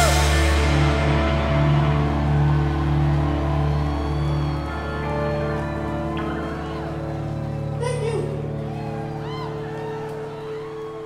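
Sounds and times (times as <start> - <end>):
electric guitars and bass sustaining: 0.0 - 9.6.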